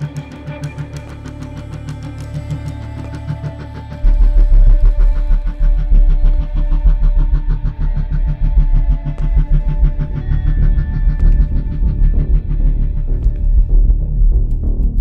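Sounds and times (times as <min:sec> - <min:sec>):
suspense film score: 0:00.0 - 0:15.0
deep bass pulse: 0:01.7 - 0:15.0.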